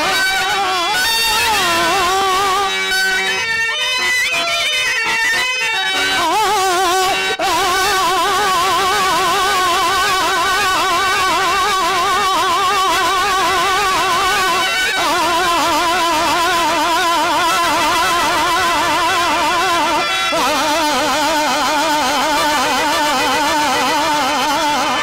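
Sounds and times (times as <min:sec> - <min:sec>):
man singing: 0:00.0 - 0:02.8, 0:06.0 - 0:25.0.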